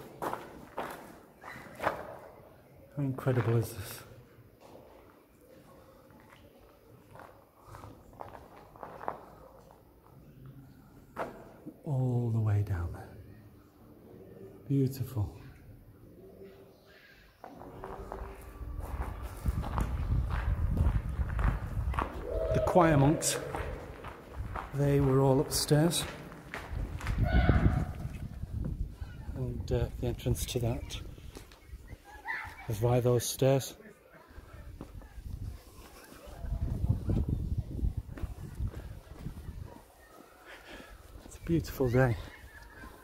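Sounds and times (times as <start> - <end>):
footsteps of person walking: 0.0 - 2.2, 17.4 - 28.9, 38.1 - 41.5.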